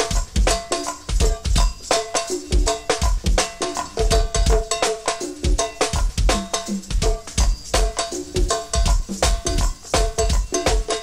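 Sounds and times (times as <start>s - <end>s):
cowbells struck: 0.0s - 11.0s
kick drum and drums: 0.0s - 11.0s.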